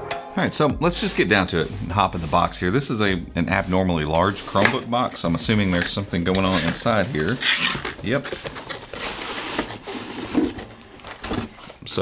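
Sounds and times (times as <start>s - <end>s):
cardboard scraping and rubbing: 0.9s - 11.8s.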